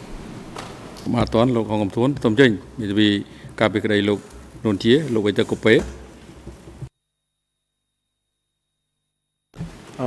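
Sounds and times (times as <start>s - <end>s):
man speaking into microphone: 1.0s - 6.0s.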